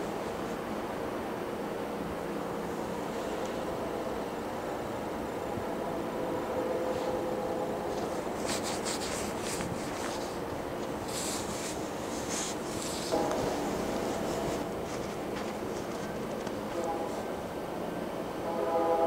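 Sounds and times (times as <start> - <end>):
distant diesel train rumble: 0.0 - 19.0
scratchy rubbing noises: 7.8 - 17.3
faint steady tones: 10.0 - 19.0.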